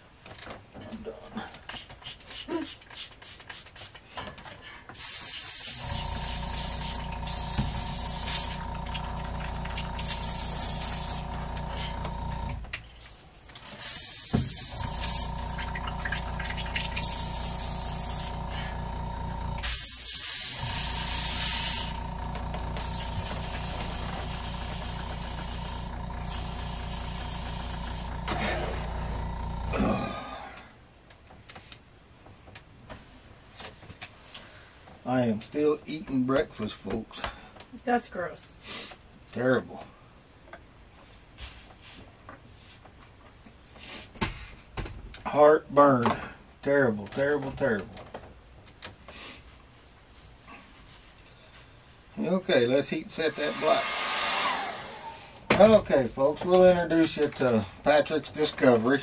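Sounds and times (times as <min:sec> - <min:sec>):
airbrush hissing: 0:05.0 - 0:12.4, 0:13.8 - 0:15.7, 0:16.6 - 0:29.6
air compressor humming: 0:05.0 - 0:12.7, 0:13.6 - 0:30.2, 0:53.3 - 0:55.6.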